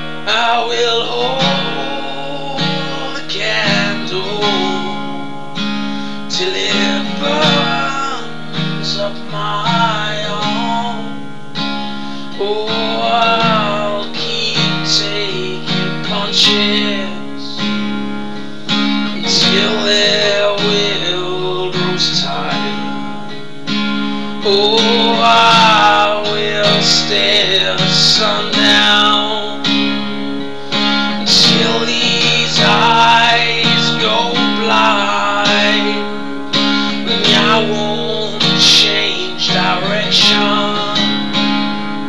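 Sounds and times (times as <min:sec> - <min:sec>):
person singing wordless melody: 0:00.0 - 0:11.3, 0:12.0 - 0:17.8, 0:18.4 - 0:23.1, 0:24.2 - 0:41.6
acoustic guitar strumming: 0:00.0 - 0:42.0.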